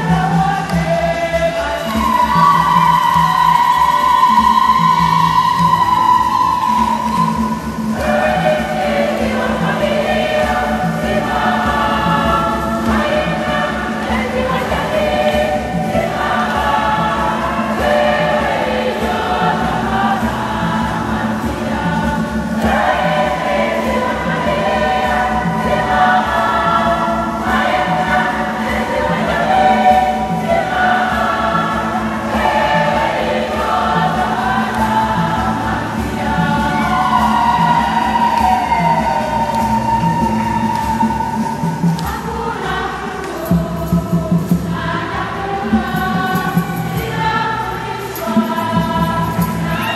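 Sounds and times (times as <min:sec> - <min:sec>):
women's choir singing a hymn: 0:00.0 - 0:49.9.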